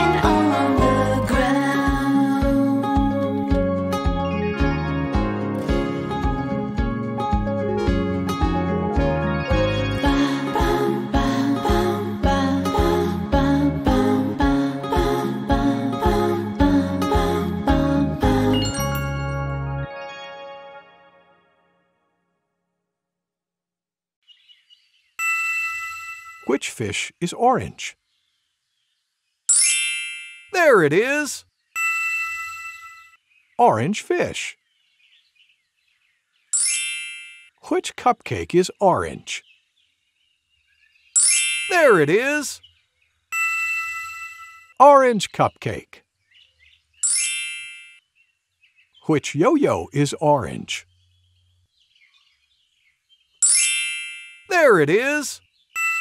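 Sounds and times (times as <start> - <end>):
bright chime sound effect: 18.6 - 21.4, 29.5 - 30.9, 36.6 - 37.5, 41.2 - 42.2, 47.0 - 48.0, 53.4 - 55.0
faint high twinkle: 18.6 - 21.6, 25.2 - 26.5.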